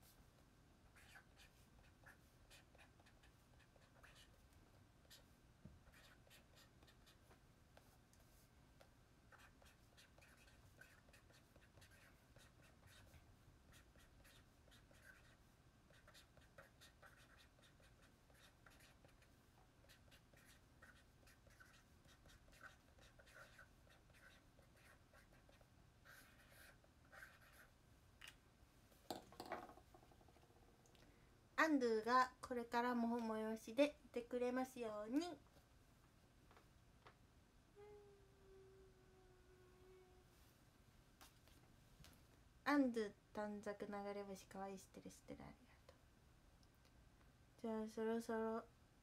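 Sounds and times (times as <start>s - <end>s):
pen scratching on paper: 1.0s - 4.4s, 5.0s - 7.2s, 9.3s - 27.7s.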